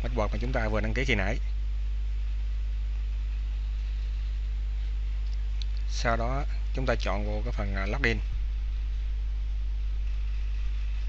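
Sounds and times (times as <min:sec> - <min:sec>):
faint hiss: 0:00.0 - 0:11.0
low electrical hum: 0:00.0 - 0:11.0.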